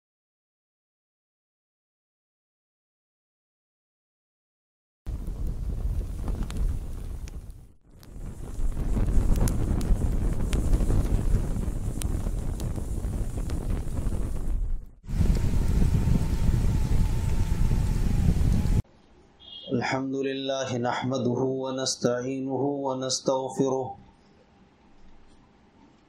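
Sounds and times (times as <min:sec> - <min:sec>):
fire crackling: 0:05.1 - 0:18.8.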